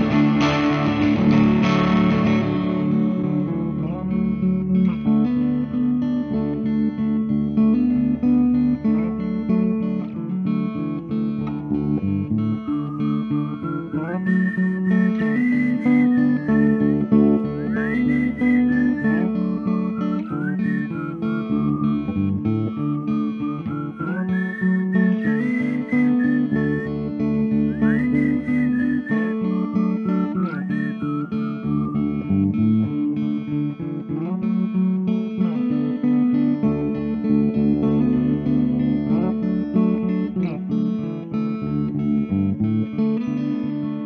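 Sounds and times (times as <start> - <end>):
strummed guitars: 0.0 - 44.0.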